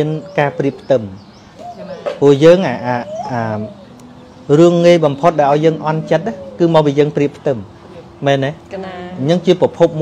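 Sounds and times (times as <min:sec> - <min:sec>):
man speaking: 0:00.0 - 0:01.2, 0:02.2 - 0:03.8, 0:04.5 - 0:08.6
faint bird calls: 0:00.0 - 0:08.2.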